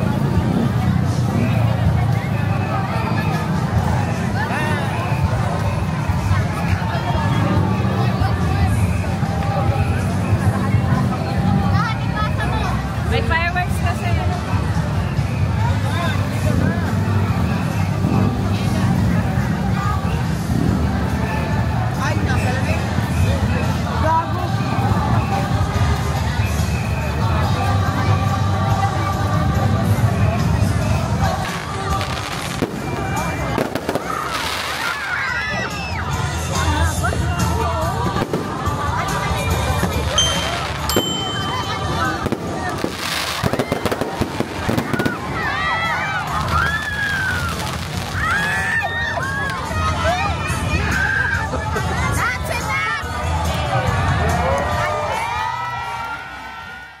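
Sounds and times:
crowd chatter: 0.0 - 57.0
fireworks bangs and crackles: 30.4 - 35.2, 38.0 - 48.7
excited shouts: 34.8 - 36.2, 44.7 - 51.6.

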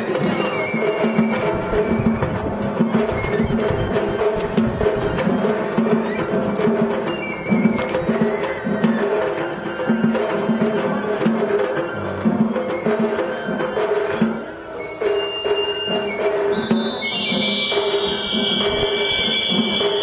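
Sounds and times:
pitched melody parts: 0.0 - 20.0
taiko drum and percussion: 0.0 - 20.0.

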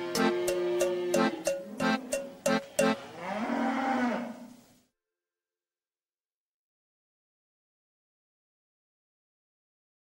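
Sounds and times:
cow mooing: 0.0 - 4.6.

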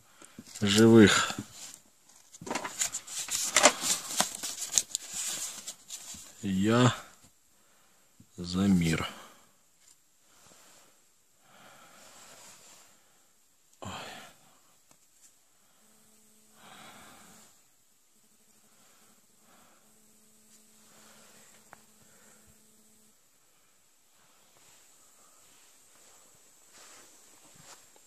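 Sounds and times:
faint steady hum: 0.0 - 28.0
paper rustling in hands: 0.4 - 6.4.

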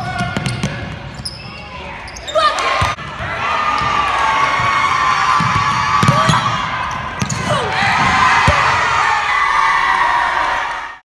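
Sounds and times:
spectators shouting and cheering: 1.7 - 11.0.

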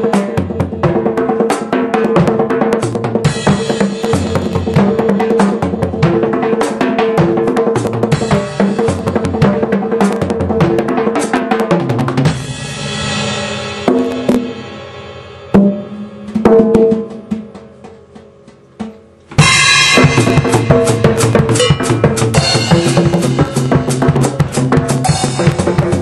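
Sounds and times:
drum kit solo: 0.0 - 26.0
cymbal wash ringing: 19.5 - 23.6.

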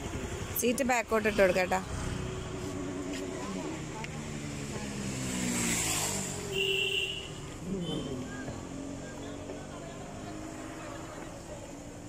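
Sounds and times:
vehicle engine running: 0.0 - 5.2.

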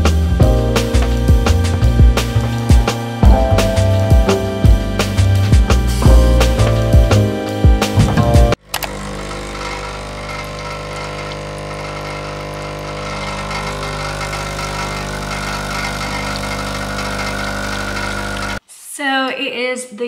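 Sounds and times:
espresso machine pump humming: 0.0 - 7.1, 8.0 - 18.6
espresso pouring into cup: 8.8 - 18.6.

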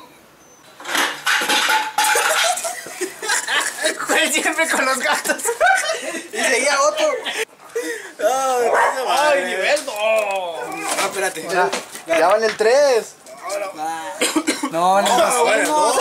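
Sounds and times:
group of men laughing: 2.1 - 8.2.

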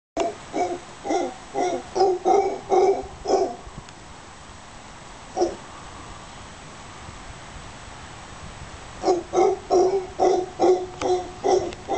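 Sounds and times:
howler monkey calling: 0.2 - 3.6, 9.0 - 11.9.

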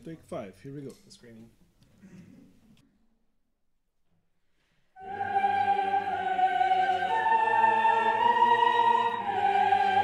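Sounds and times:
choir singing sustained note: 5.0 - 10.0.

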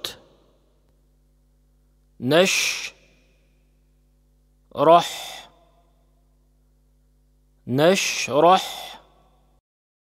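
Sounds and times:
person reciting a word: 2.2 - 3.2, 4.7 - 5.8, 7.6 - 9.2.

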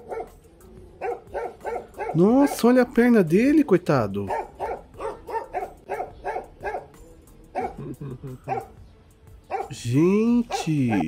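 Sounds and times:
dog barking: 0.0 - 2.6, 4.2 - 8.8, 9.5 - 9.8, 10.4 - 11.0.

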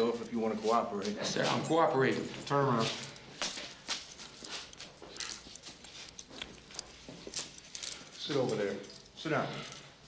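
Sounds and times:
shuffling movement: 0.0 - 9.9
handcuffs clicking and knocking: 3.1 - 9.9.

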